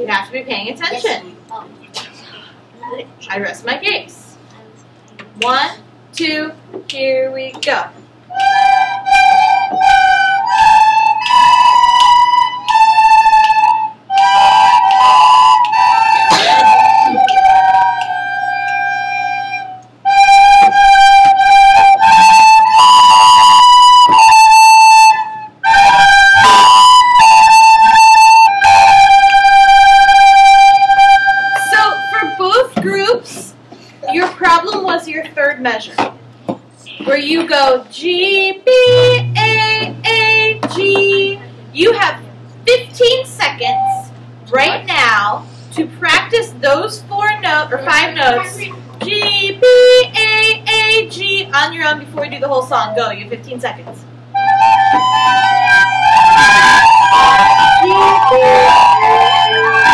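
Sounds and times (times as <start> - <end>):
children playing recorders: 8.3 - 32.6, 38.7 - 39.8, 43.6 - 44.1, 49.6 - 50.4, 54.3 - 59.9
children chattering: 47.2 - 49.5.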